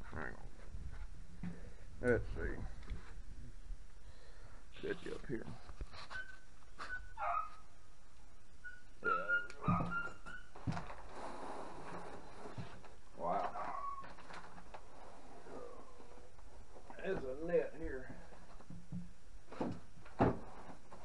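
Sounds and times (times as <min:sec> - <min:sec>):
dog barking: 0:07.2 - 0:07.6.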